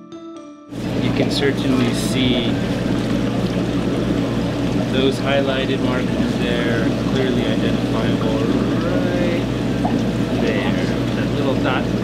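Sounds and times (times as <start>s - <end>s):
low constant hum: 0.8s - 12.0s
running water rushing: 0.8s - 12.0s.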